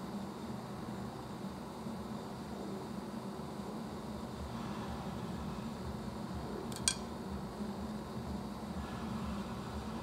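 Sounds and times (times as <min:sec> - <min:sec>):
room noise hum and hiss: 0:00.0 - 0:10.0
sharp click: 0:06.7 - 0:07.1.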